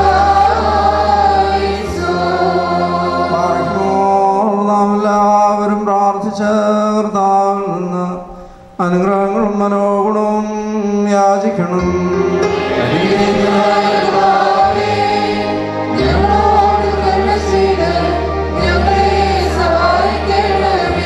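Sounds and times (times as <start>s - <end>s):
choir singing slow chant: 0.0s - 5.0s, 11.8s - 21.0s.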